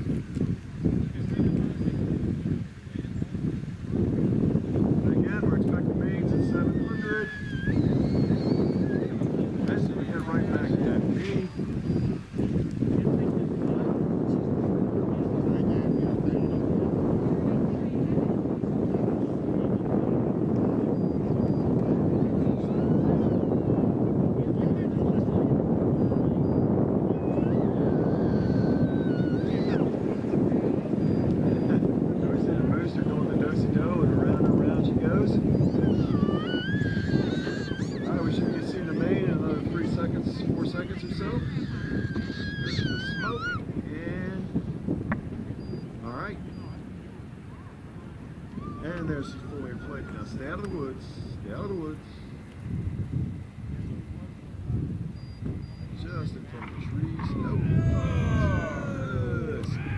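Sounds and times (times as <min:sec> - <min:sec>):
wind buffeting microphone: 0:00.0 - 0:59.9
faint high chirps and whistles: 0:06.8 - 0:09.1, 0:31.0 - 0:31.8, 0:45.6 - 0:45.9, 0:46.5 - 0:46.8, 0:55.2 - 0:56.0.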